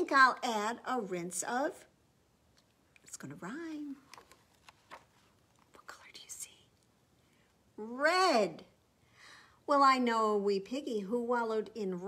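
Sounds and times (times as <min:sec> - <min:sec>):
faint breathy hiss: 0:05.1 - 0:07.8, 0:08.7 - 0:09.7.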